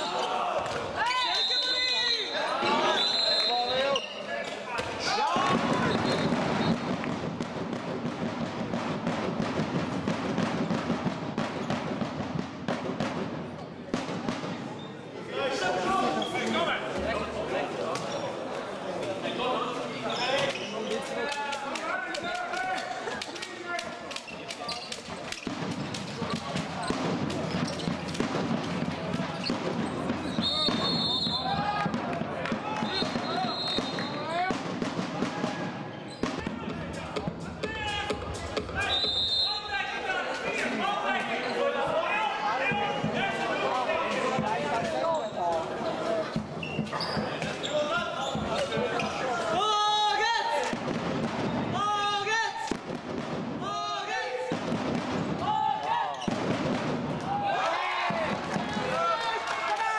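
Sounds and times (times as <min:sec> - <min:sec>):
people shouting and talking: 0:00.0 - 0:59.9
high whistle blasts: 0:01.0 - 0:04.2, 0:30.3 - 0:31.6, 0:32.8 - 0:34.3, 0:38.8 - 0:39.8
ball bouncing on hall floor: 0:24.1 - 0:30.9.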